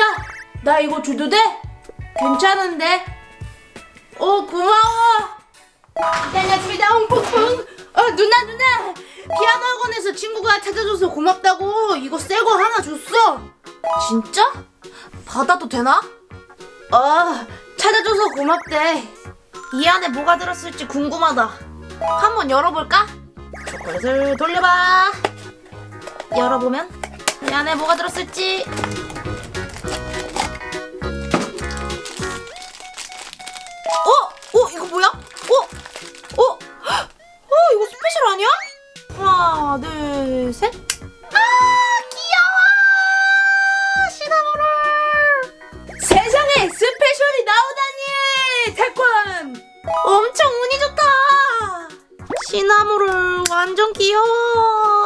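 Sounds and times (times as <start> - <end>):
background music with a beat: 0.0 - 1.0, 1.6 - 2.5, 3.1 - 4.2, 28.7 - 33.1, 49.4 - 50.1
candy wrapper crinkling: 27.1 - 37.2.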